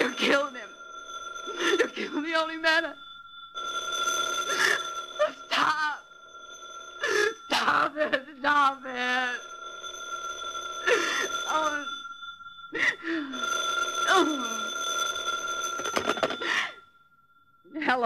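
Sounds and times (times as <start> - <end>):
telephone bell ringing: 0.0 - 17.0
woman sobbing: 1.5 - 2.6, 4.5 - 6.0, 7.0 - 8.8, 10.8 - 11.9, 12.7 - 14.7, 16.0 - 16.8.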